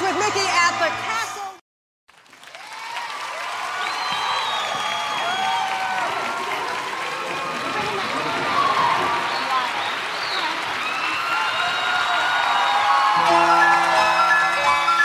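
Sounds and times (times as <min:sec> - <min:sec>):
audience applause: 0:02.1 - 0:15.0
crowd voices: 0:04.6 - 0:15.0.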